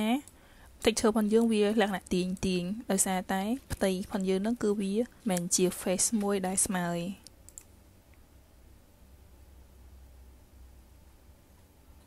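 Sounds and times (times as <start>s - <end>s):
low steady hum: 0.0s - 12.0s
computer mouse clicks: 5.2s - 6.4s, 7.2s - 7.8s.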